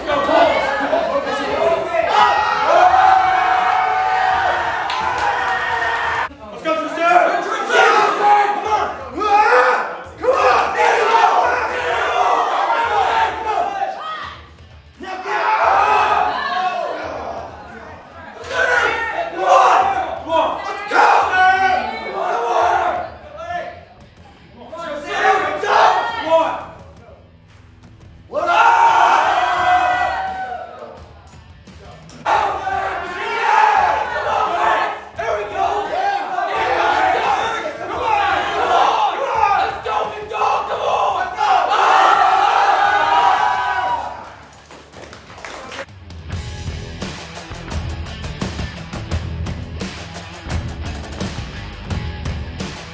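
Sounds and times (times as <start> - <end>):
crowd yelling encouragement: 0.0 - 23.8, 24.8 - 26.8, 28.3 - 31.1, 32.2 - 44.4.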